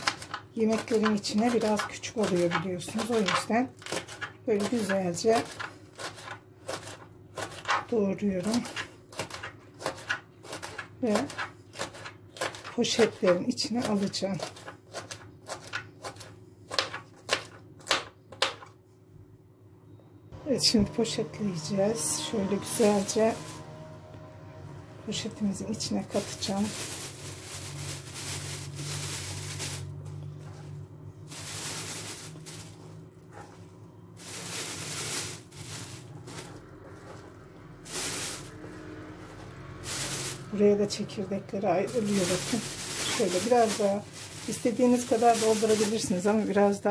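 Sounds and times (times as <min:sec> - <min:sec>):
plastic bag rustling: 0:22.5 - 0:23.9, 0:25.1 - 0:41.0, 0:41.8 - 0:46.9.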